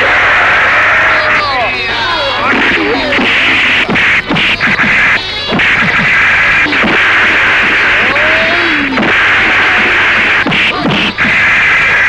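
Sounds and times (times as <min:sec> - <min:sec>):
loud steady hiss: 0:00.0 - 0:12.0
punch hits: 0:02.6 - 0:11.4
person shouting: 0:07.9 - 0:09.0.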